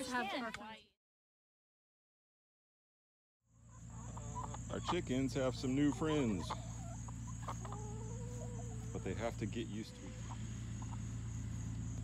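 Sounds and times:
chickens clucking: 0:03.5 - 0:12.0.

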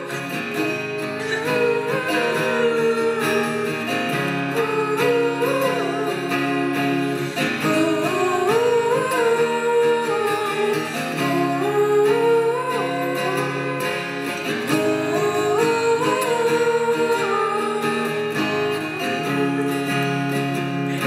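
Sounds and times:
acoustic guitar: 0:00.0 - 0:21.0
women singing in harmony: 0:00.0 - 0:21.0.

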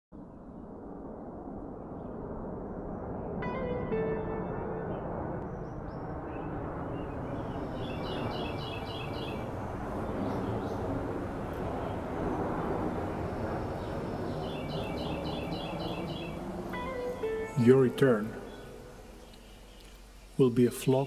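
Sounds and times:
low outdoor rushing noise: 0:00.2 - 0:21.0
small bird chirping: 0:07.3 - 0:09.6, 0:13.7 - 0:21.0.

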